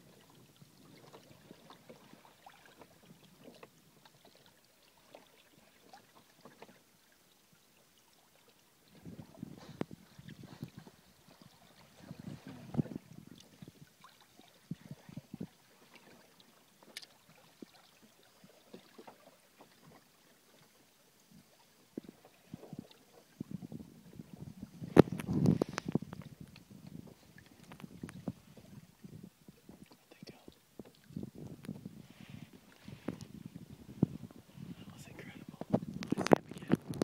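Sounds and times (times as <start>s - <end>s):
water lapping against kayak hull: 0.0s - 37.0s.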